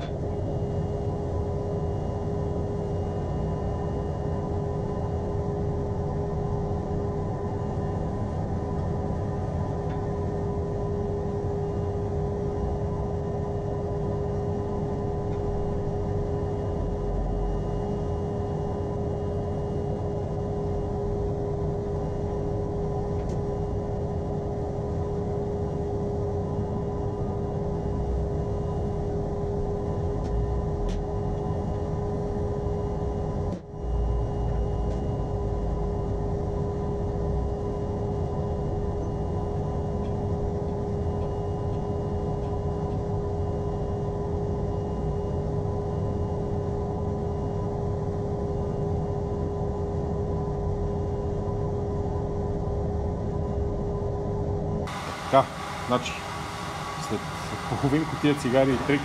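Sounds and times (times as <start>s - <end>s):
steady mechanical drone: 0.0s - 59.0s.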